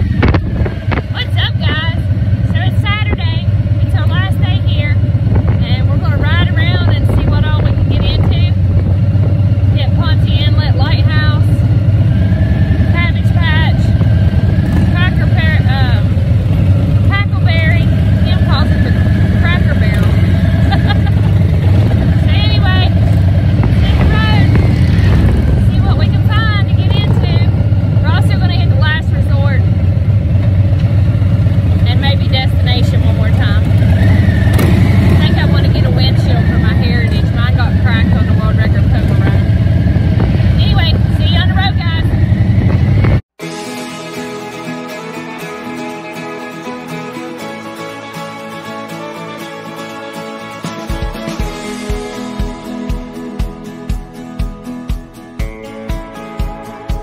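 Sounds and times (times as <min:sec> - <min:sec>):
motorcycle engine running: 0:00.0 - 0:43.4, 0:44.2 - 0:57.0.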